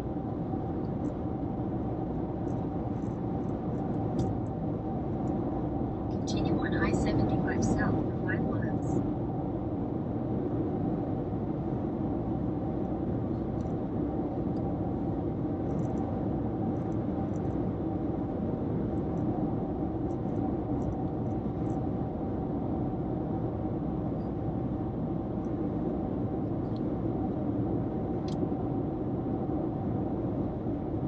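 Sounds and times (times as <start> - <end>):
car road and tyre noise: 0.0 - 31.0
faint hum: 0.0 - 31.0.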